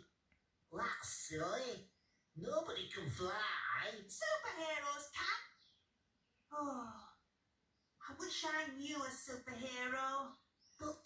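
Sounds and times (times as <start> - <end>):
cartoon voice through tv speaker: 0.7 - 5.7, 8.0 - 11.0.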